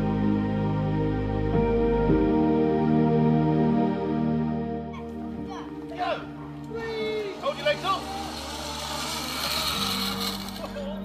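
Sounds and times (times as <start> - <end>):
soft background music: 0.0 - 11.0
zip line trolley hiss: 7.0 - 11.0.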